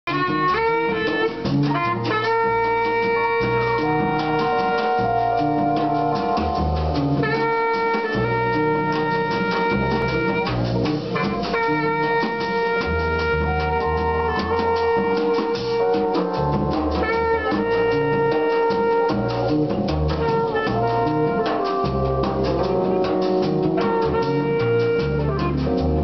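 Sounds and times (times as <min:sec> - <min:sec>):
saxophone long held notes: 0:00.1 - 0:10.6, 0:11.2 - 0:26.0
drum kit on cymbals and drums: 0:00.1 - 0:26.0
walking double bass line: 0:00.1 - 0:26.0.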